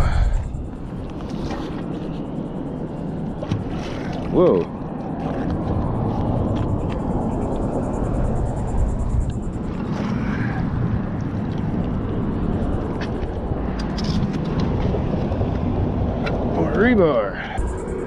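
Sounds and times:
low rumbling noise: 0.0s - 3.4s, 17.4s - 18.0s.

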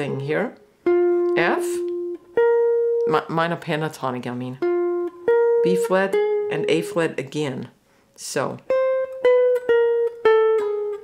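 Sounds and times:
jazz guitar descending notes: 0.0s - 7.2s, 8.7s - 11.0s.

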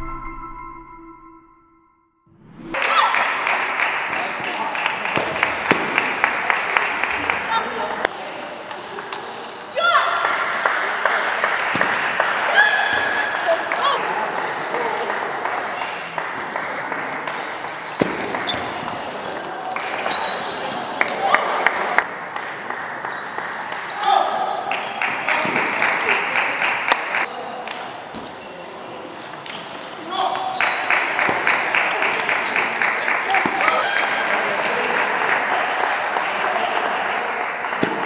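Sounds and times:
spectators applauding: 2.8s - 8.1s, 10.2s - 17.6s, 20.9s - 23.9s, 24.7s - 27.3s, 30.6s - 38.0s.

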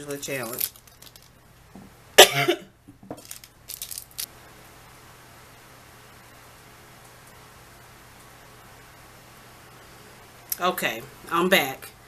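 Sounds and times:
plastic packaging rustling: 0.3s - 1.4s, 3.1s - 4.3s
loud cough: 2.2s - 2.7s.

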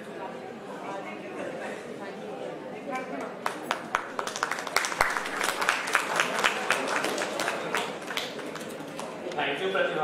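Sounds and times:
audience applauding: 3.4s - 9.1s.

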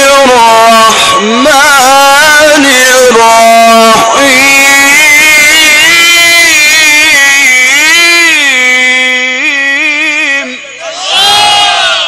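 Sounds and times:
amplified melodic recitation: 0.0s - 10.9s
crowd calling out in approval: 10.8s - 12.0s.

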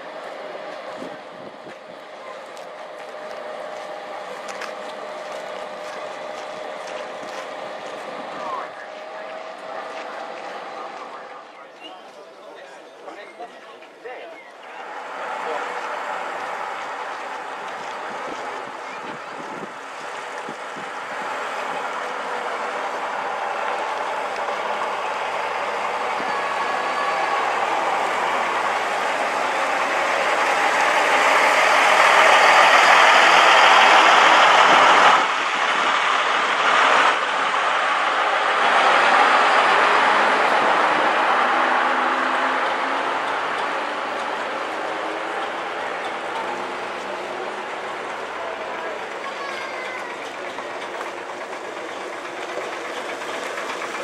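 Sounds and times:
bus engine driving past: 0.0s - 54.0s.

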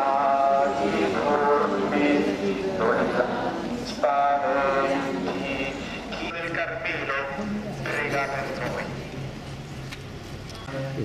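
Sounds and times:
crowd chanting a prayer: 0.0s - 9.3s.

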